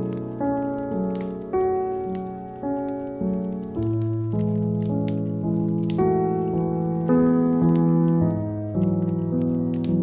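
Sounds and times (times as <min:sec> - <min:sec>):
slow solo piano music: 0:00.0 - 0:10.0.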